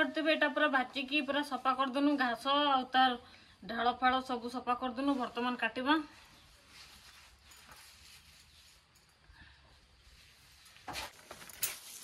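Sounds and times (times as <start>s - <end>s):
leafy greens rustling in basket: 5.0s - 9.2s, 9.9s - 12.0s.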